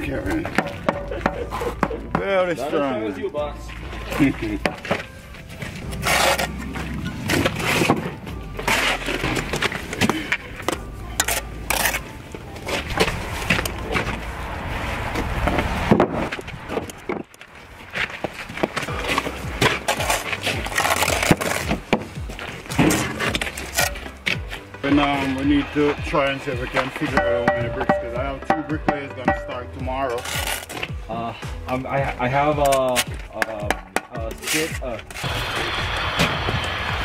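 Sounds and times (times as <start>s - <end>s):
music: 0.0s - 14.3s, 18.3s - 37.0s
voices: 24.7s - 30.3s
trowel knocking and scraping on stone: 27.0s - 29.6s.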